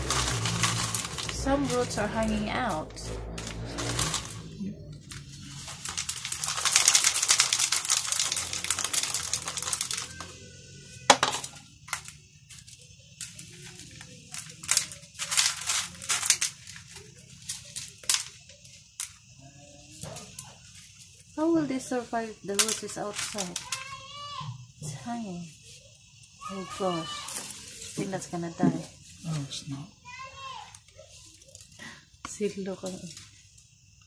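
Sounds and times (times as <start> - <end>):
pebbles clicking against plastic: 0.0 - 2.5, 5.1 - 10.4, 11.0 - 19.3, 22.5 - 23.9
clay pebbles crunching rattle: 0.0 - 19.4, 20.2 - 24.1.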